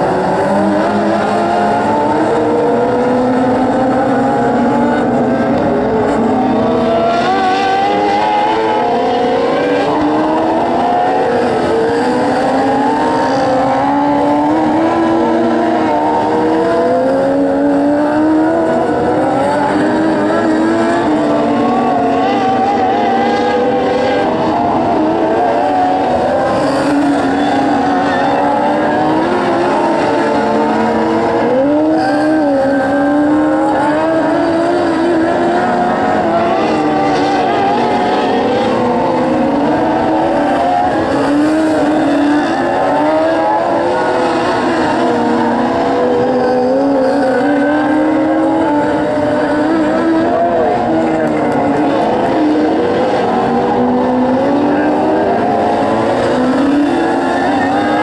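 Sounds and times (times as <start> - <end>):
race car engines: 0.0 - 58.0.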